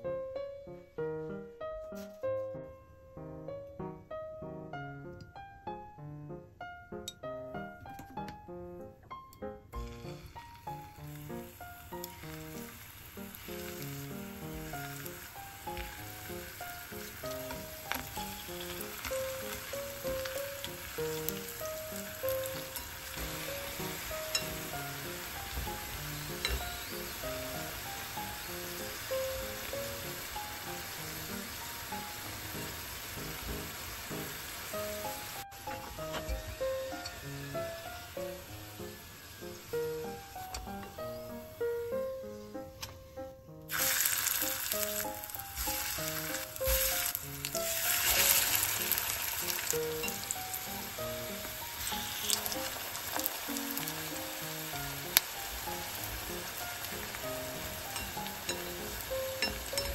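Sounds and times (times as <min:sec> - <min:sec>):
soft background music: 0:00.0 - 0:59.9
dumplings sizzling in hot oil: 0:09.8 - 0:42.4, 0:43.7 - 0:59.9.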